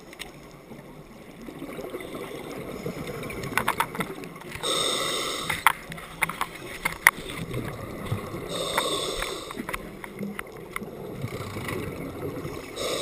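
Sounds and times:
rush of air and bubbles: 0:01.3 - 0:13.0
scuba regulator breathing: 0:04.6 - 0:05.9, 0:08.3 - 0:09.9, 0:12.7 - 0:13.0.

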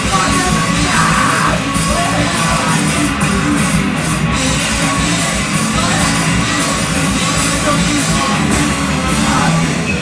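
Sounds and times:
punk rock band playing: 0:00.0 - 0:10.0
yelled vocals: 0:00.0 - 0:10.0.

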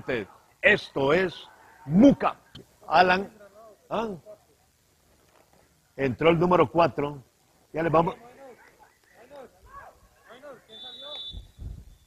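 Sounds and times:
faint voices calling: 0:00.0 - 0:06.0
referee's whistle blast: 0:10.7 - 0:11.8.

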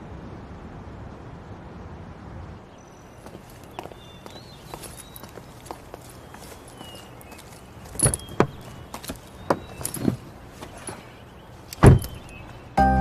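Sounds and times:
faint bird chirps: 0:02.6 - 0:13.0
footsteps on pavement: 0:03.1 - 0:11.1.

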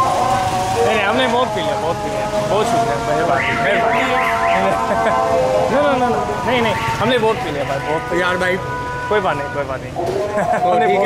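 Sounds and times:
motor traffic hum: 0:00.0 - 0:11.0
people talking: 0:00.8 - 0:11.0.

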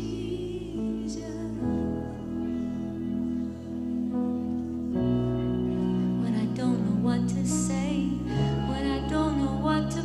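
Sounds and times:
slow soft band music: 0:00.0 - 0:10.0.

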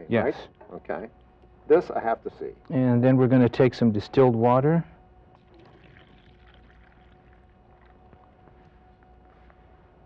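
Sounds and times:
faint steady hum: 0:00.0 - 0:10.0
water poured into plastic cup: 0:05.4 - 0:08.0.

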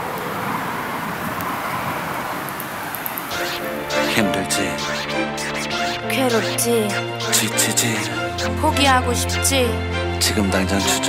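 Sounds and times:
distant city traffic: 0:00.0 - 0:11.0.

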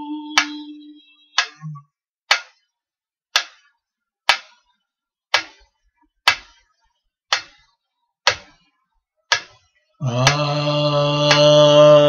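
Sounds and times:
mechanical metronome ticking: 0:00.0 - 0:02.5.

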